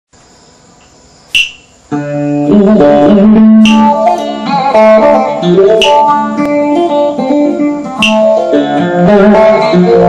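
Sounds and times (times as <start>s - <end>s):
loud sharp ringing click: 1.4s - 1.7s, 3.6s - 4.0s, 5.8s - 6.1s
plucked string instrument: 1.9s - 10.0s.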